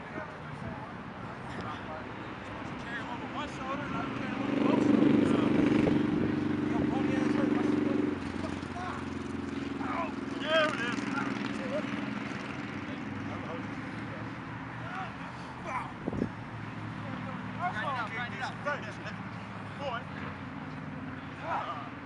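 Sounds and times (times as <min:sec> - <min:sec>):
engine hum: 0:00.0 - 0:22.0
players shouting and calling: 0:01.2 - 0:05.2, 0:06.3 - 0:22.0.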